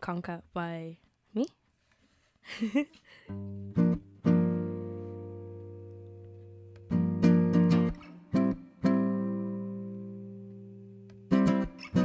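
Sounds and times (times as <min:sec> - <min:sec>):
fingerstyle acoustic guitar: 0:03.3 - 0:12.0.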